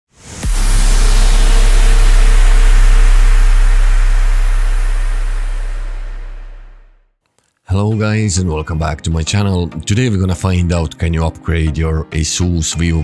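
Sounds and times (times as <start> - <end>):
rising sweep: 0.1 - 7.0
heavy deep boom: 0.2 - 7.0
noisy rush and rumble: 0.2 - 7.0.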